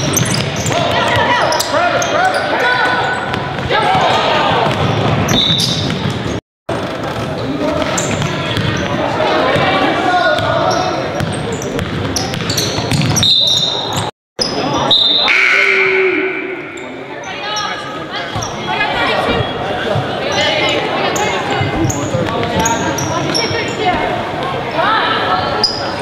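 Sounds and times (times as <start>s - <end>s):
sneaker squeaks: 0.0s - 4.1s, 4.8s - 6.4s, 7.2s - 9.0s, 10.4s - 24.0s, 25.5s - 26.0s
echoing crowd chatter: 0.0s - 26.0s
basketball bouncing on hardwood floor: 11.2s - 13.2s.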